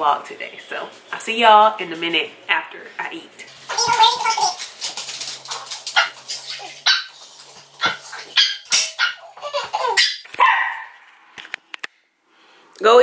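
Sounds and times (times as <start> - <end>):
dog barking: 5.9 - 7.2, 7.8 - 11.0.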